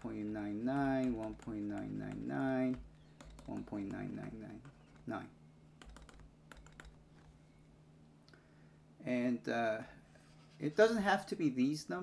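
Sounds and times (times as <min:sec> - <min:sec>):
stylus tapping on pen tablet: 0:00.0 - 0:05.2, 0:05.8 - 0:07.3.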